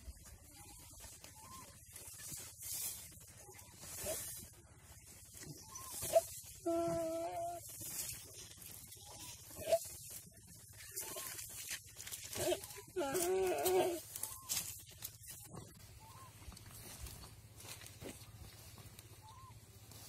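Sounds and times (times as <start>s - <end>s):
deer bleating distress call: 12.4s - 14.2s.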